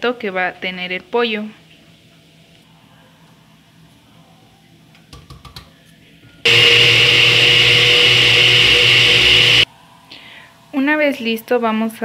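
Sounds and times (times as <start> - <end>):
blender running high whine: 6.5 - 9.7.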